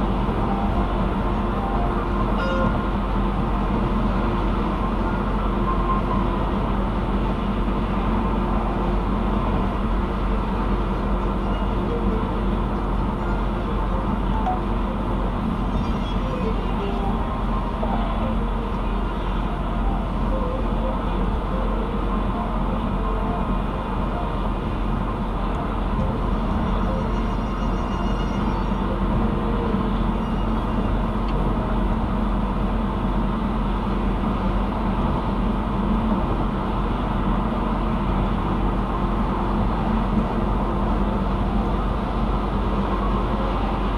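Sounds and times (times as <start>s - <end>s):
low engine hum: 0.0s - 43.9s.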